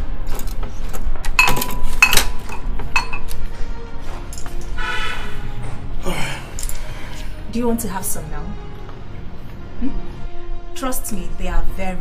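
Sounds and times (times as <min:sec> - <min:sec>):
background music: 0:00.0 - 0:12.0
ceramic pot lid clinking: 0:01.4 - 0:03.3.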